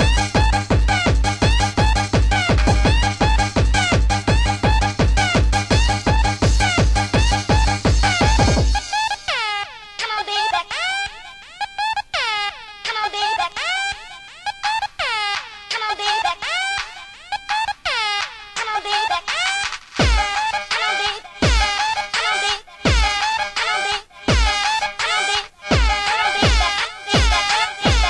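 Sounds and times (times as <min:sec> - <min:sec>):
deep kick drum hits: 0:00.0 - 0:08.8, 0:20.0 - 0:20.3, 0:21.4 - 0:21.7, 0:22.9 - 0:23.1, 0:24.3 - 0:24.6, 0:25.7 - 0:28.0
club dance music synth stabs: 0:00.0 - 0:28.0.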